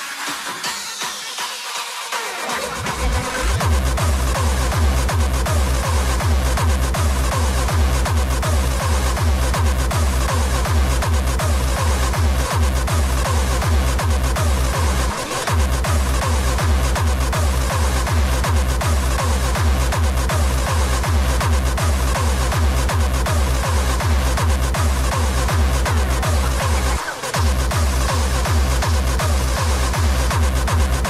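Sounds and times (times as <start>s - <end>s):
fast heavy kick drum: 0.1s - 31.0s
dense synth layers: 2.6s - 31.0s.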